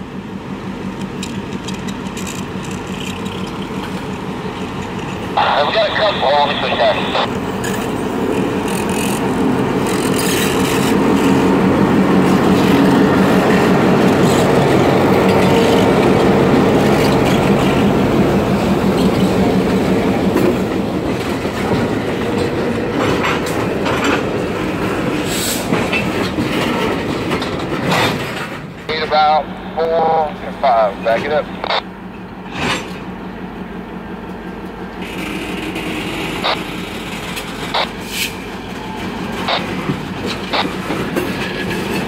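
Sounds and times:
diesel locomotive passing: 0.0 - 42.0
train wheels clattering over rail joints: 0.9 - 5.4, 7.5 - 28.9, 32.2 - 33.2, 35.0 - 42.0.

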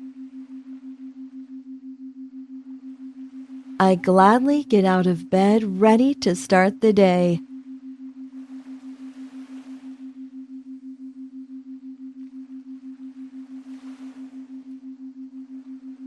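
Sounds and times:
low pulsing pure tone: 0.0 - 16.0.

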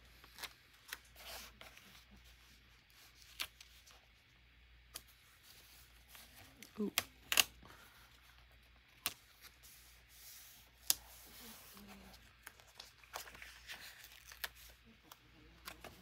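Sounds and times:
paper rubbing and rustling: 9.0 - 16.0.

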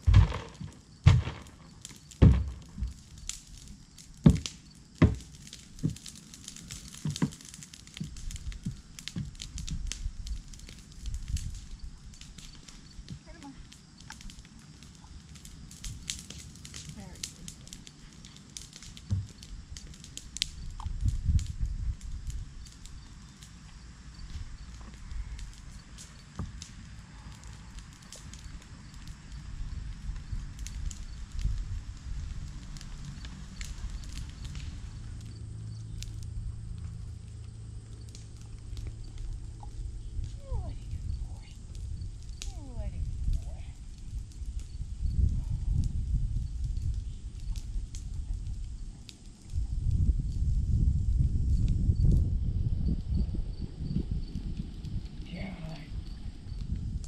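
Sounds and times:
block knocking on ground: 0.0 - 3.0, 4.2 - 6.0
low rumbling: 0.0 - 4.0, 8.1 - 57.0
horse hooves walking on dirt: 0.0 - 50.7
fire crackling: 0.0 - 57.0.

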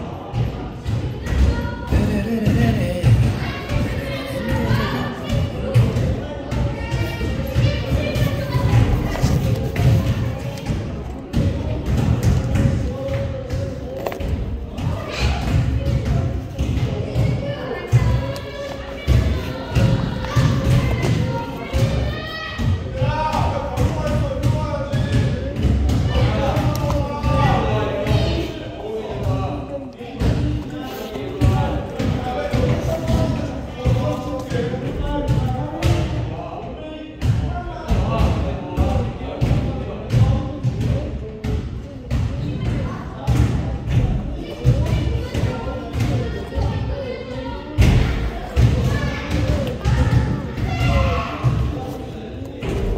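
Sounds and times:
voices: 0.0 - 52.9.

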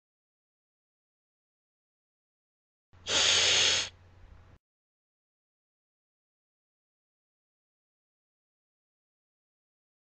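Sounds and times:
cat hissing: 3.0 - 4.0.

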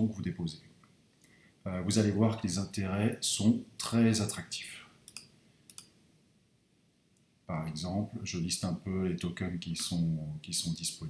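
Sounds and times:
faint mouse clicks: 5.0 - 6.0.

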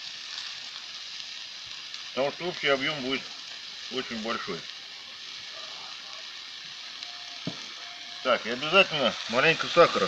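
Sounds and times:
meat sizzling in a pot: 0.0 - 10.0.

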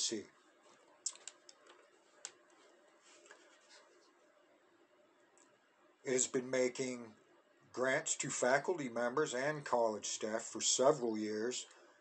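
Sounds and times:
very faint rustles: 0.6 - 4.2.

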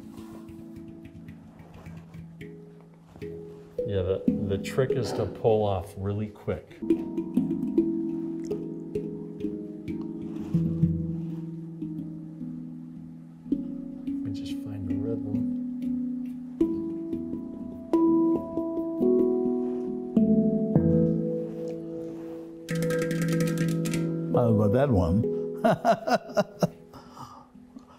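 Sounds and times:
handpan notes struck by hand: 0.0 - 25.7.

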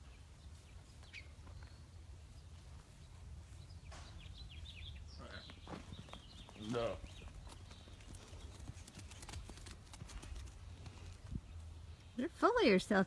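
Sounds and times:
hooves knocking on grass: 5.2 - 11.8.

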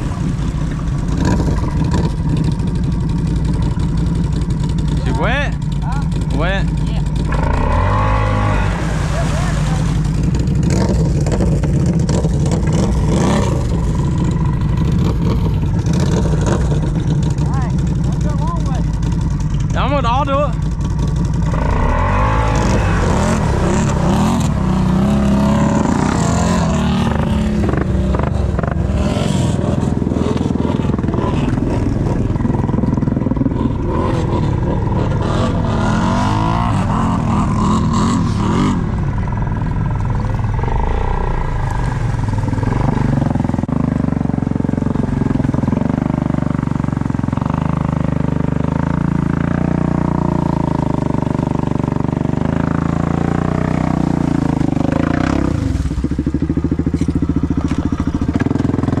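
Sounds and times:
atv engine running under load: 0.0 - 59.0
churning through mud and water: 0.0 - 59.0.

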